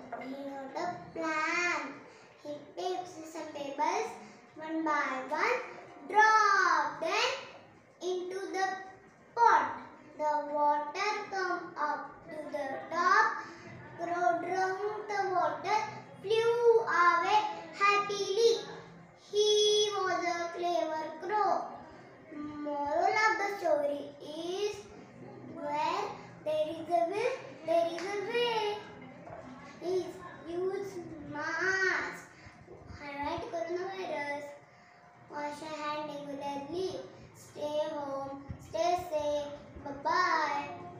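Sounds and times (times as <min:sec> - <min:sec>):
girl telling a story: 0:00.0 - 0:40.9.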